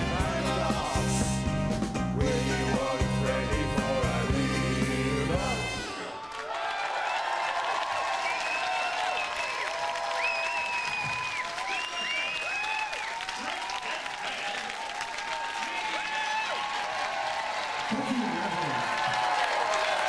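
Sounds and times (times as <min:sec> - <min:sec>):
audience applauding and cheering: 0:05.7 - 0:20.0
shrill whistles: 0:08.1 - 0:13.3.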